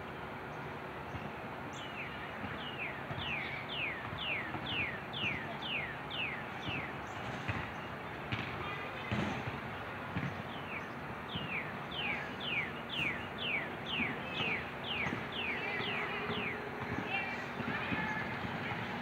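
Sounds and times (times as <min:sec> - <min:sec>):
songbird whistling: 0:01.8 - 0:07.2, 0:10.5 - 0:18.2.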